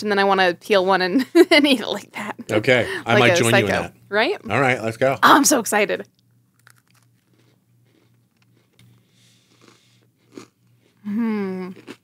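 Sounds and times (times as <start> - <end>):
low steady hum: 0.0 - 12.0
cookies crunching and chewing: 6.5 - 12.0.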